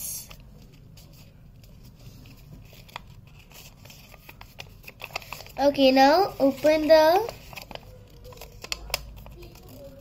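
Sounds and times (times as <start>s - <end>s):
paper rustling and crinkling: 0.2s - 10.0s
sharp paper tick: 2.7s - 10.0s.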